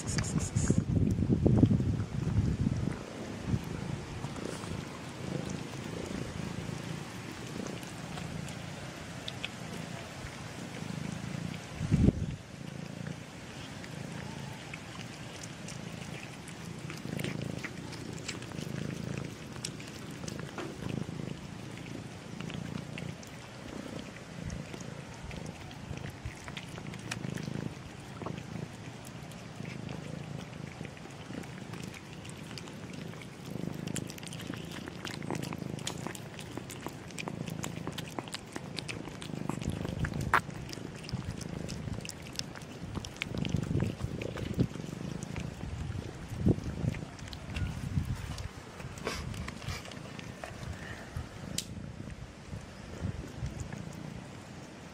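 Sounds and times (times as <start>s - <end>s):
cat purring: 0.0s - 54.9s
cats chewing and lapping: 0.0s - 54.9s.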